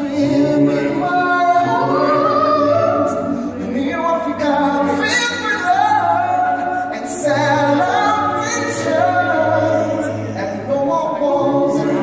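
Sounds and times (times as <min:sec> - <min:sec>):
voices singing together: 0:00.0 - 0:12.0.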